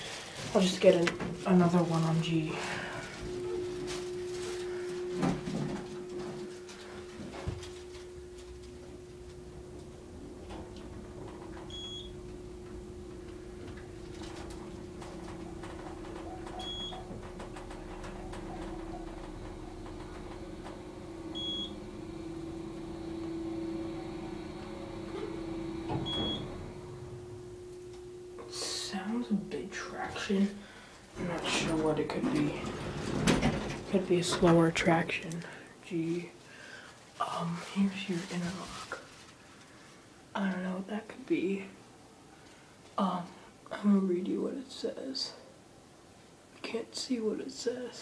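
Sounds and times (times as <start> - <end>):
elevator humming: 0.0 - 38.5.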